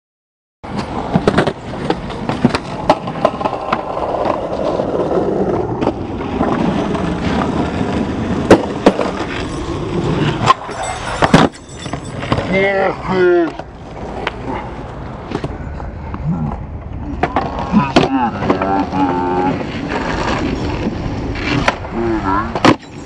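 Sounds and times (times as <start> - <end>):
skateboard wheels rolling on concrete: 0.6 - 23.0
skateboard clacking: 0.7 - 12.7.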